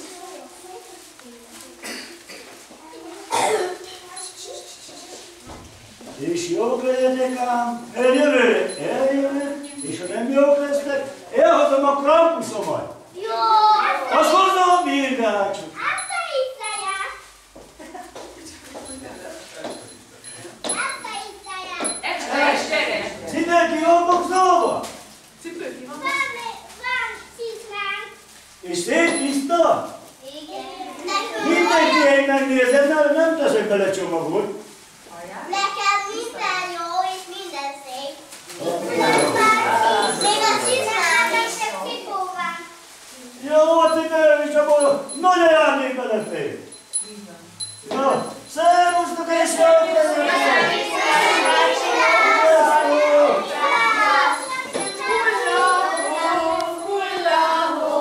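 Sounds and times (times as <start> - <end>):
young children talking and calling: 0.0 - 58.0.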